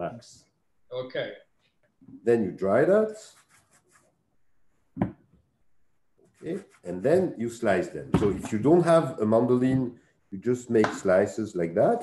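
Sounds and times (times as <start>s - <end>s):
towel rubbing vegetable: 3.1s - 4.2s, 6.2s - 7.6s.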